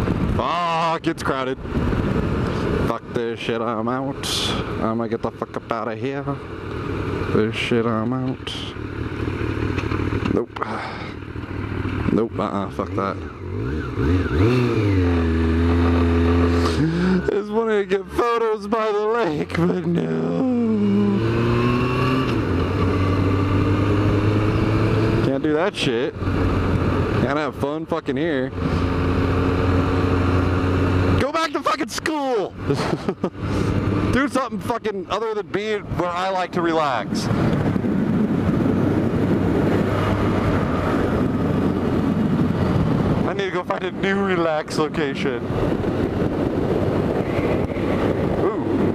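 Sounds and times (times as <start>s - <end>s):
wind rushing over microphone: 0.0s - 10.5s, 11.6s - 48.9s
motorcycle engine running: 4.2s - 31.6s
motorcycle engine pulling away: 11.2s - 17.0s, 20.1s - 25.4s.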